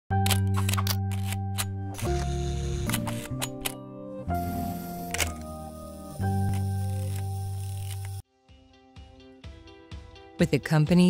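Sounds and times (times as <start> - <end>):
background music with sustained chords: 0.3 - 10.4.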